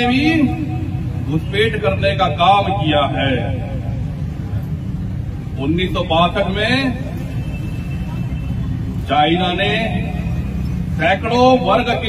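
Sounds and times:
low rumble of street traffic: 0.0s - 12.0s.

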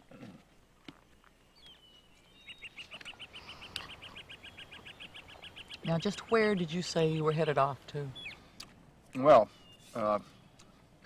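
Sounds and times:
bird trilling high chirps: 1.6s - 7.3s, 8.1s - 8.4s.

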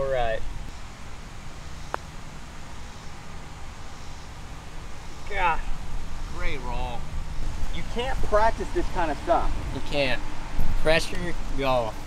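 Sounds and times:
low rumble of wind: 0.0s - 12.0s.

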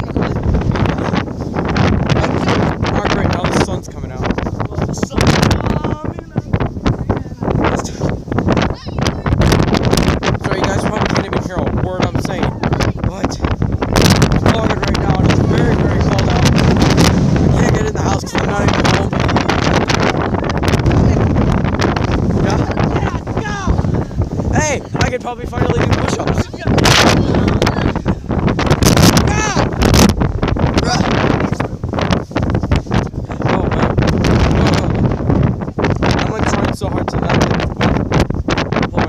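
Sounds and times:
wind on microphone: 0.0s - 39.0s.

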